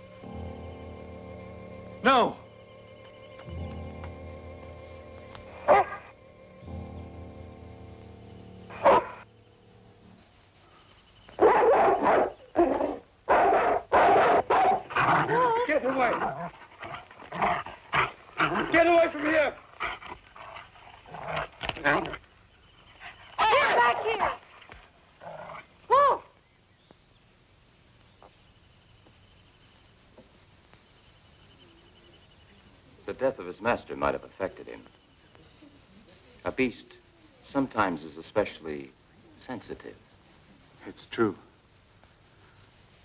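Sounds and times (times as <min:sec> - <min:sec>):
dog barking and whining: 0:05.6 - 0:06.1, 0:08.7 - 0:09.3, 0:11.4 - 0:18.8.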